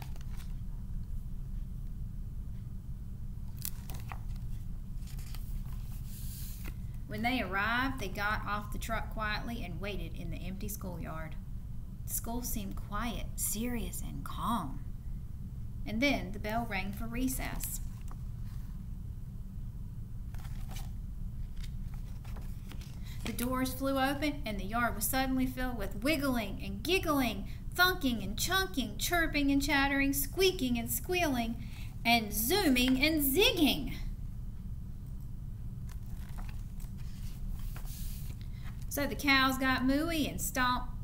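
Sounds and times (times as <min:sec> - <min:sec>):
paper pages rustling: 0:00.0 - 0:00.6, 0:03.5 - 0:06.9, 0:20.3 - 0:23.5, 0:35.8 - 0:38.9
low room and microphone hum: 0:00.0 - 0:41.0.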